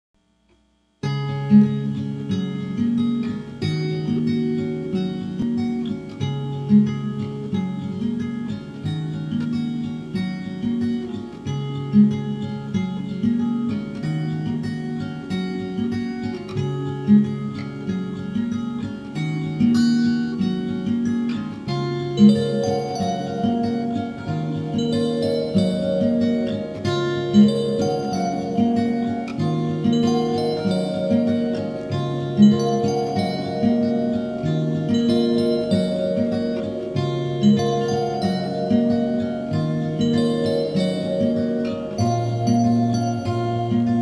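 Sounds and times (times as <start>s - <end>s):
acoustic guitar music: 1.0s - 44.0s.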